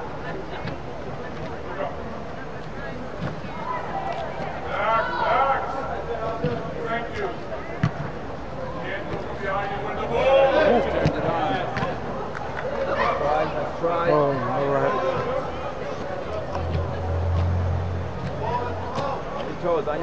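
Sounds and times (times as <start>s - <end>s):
steady hum of hall: 0.0s - 20.0s.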